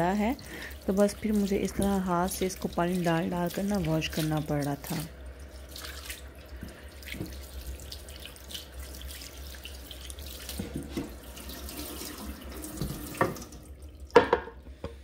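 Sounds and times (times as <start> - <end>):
water splashing over bowl: 0.0 - 14.2
tap running into sink: 6.6 - 7.4, 10.5 - 14.6.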